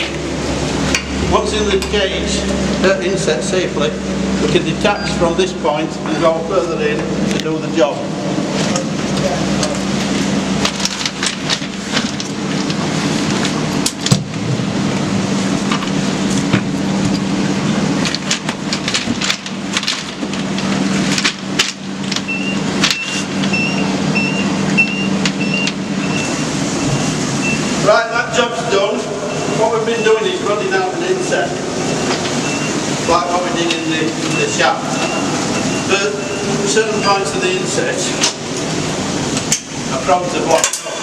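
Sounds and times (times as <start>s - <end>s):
low machine hum: 0.0s - 41.0s.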